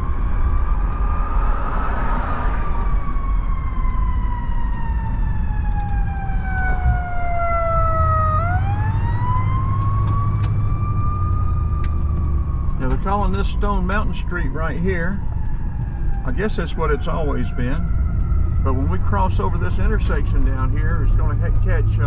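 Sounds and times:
car road noise: 0:00.0 - 0:22.0
siren wailing: 0:00.0 - 0:22.0.

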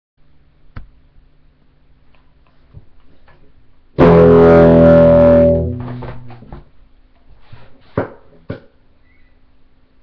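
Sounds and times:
guitar amplifier hum: 0:00.2 - 0:10.0
distorted electric guitar chord: 0:04.0 - 0:06.6.

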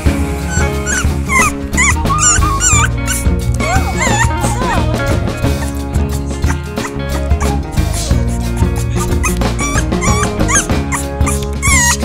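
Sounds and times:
background music with bass line: 0:00.0 - 0:12.0
puppy whimpering: 0:00.5 - 0:05.8, 0:06.4 - 0:12.0.

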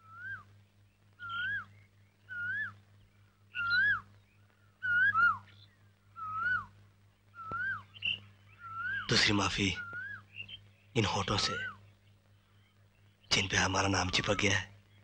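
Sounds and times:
bird whistling call: 0:00.0 - 0:00.5, 0:01.2 - 0:02.8, 0:03.5 - 0:04.1, 0:04.8 - 0:05.6, 0:06.2 - 0:06.7, 0:07.3 - 0:10.6
faint low hum: 0:00.0 - 0:15.0.

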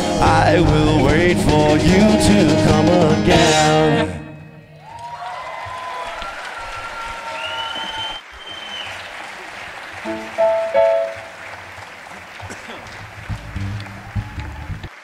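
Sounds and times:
live band song: 0:00.0 - 0:04.5
loud shouts: 0:04.8 - 0:08.2
audience applauding and cheering: 0:04.8 - 0:15.0
whistles sliding in pitch: 0:07.3 - 0:09.0.

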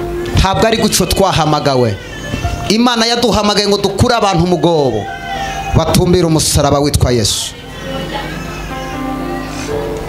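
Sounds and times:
man praying into a microphone: 0:00.3 - 0:07.6.

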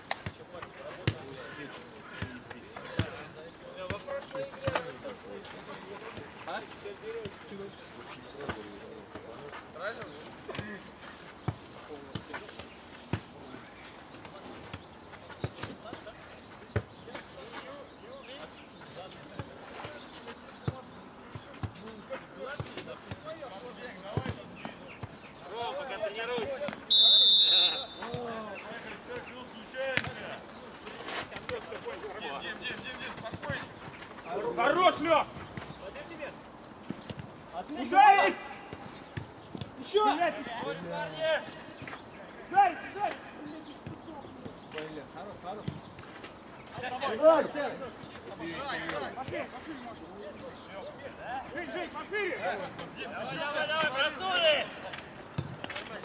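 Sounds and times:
players shouting: 0:25.4 - 0:28.5, 0:37.6 - 0:38.9, 0:42.3 - 0:43.3, 0:51.0 - 0:54.9
referee's whistle blast: 0:26.9 - 0:28.1.

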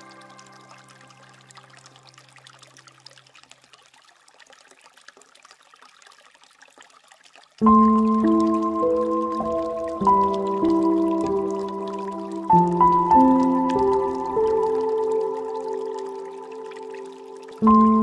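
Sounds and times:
water fountain trickling: 0:00.0 - 0:18.0
soft instrumental music: 0:07.6 - 0:18.0.

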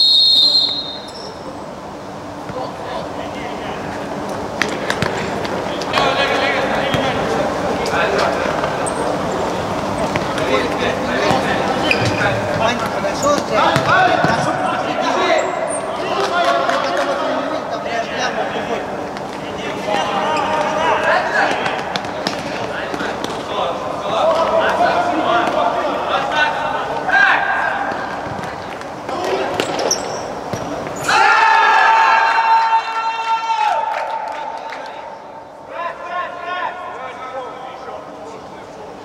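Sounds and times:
loud held tone: 0:00.0 - 0:01.5
people shouting: 0:31.0 - 0:33.8.

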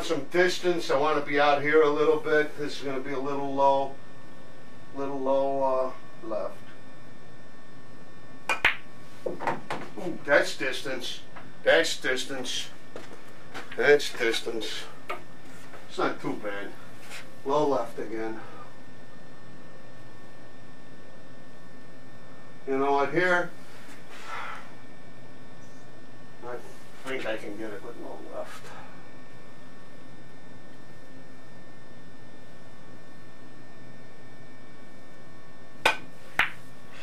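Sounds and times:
pool balls clicking together: 0:08.5 - 0:08.9
cue tip striking ball: 0:08.5 - 0:09.6, 0:35.8 - 0:36.6.

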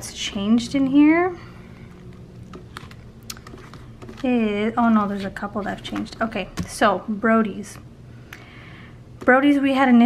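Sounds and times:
binder pages clicking: 0:05.1 - 0:06.8.

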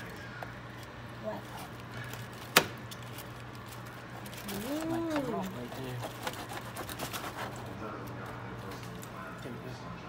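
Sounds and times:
knife and tongs scraping foil pan: 0:04.2 - 0:07.8
voices talking: 0:04.4 - 0:06.1.

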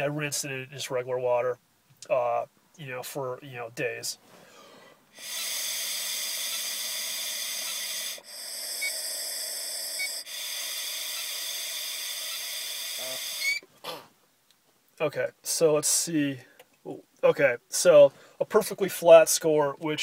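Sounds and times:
breath blown through tube: 0:04.6 - 0:14.0.

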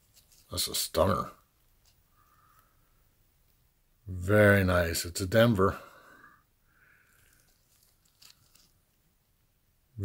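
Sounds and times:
gloved hands rustling: 0:00.0 - 0:03.7, 0:06.9 - 0:09.4.

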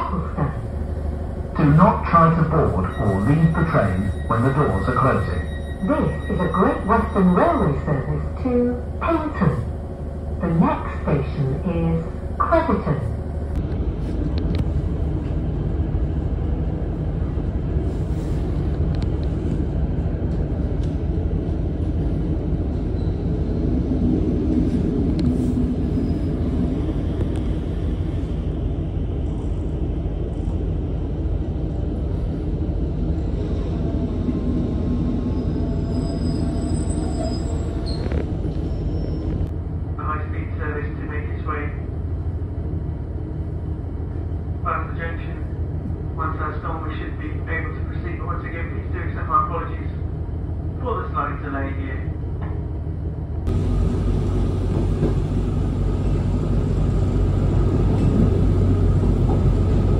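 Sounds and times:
train engine and running drone: 0:00.0 - 0:59.9.

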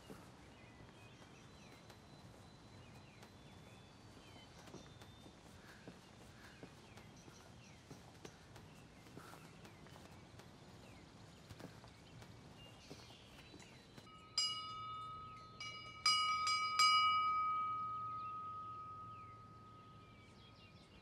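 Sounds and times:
church bell ringing: 0:14.1 - 0:20.4.

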